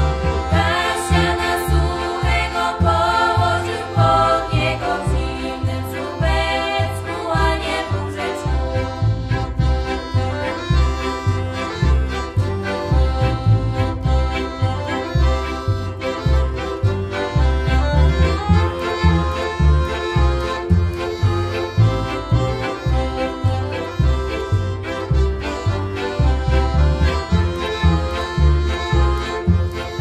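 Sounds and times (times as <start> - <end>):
accordion melody: 0.0 - 30.0
fiddles: 0.0 - 30.0
steady bass beat: 0.0 - 30.0.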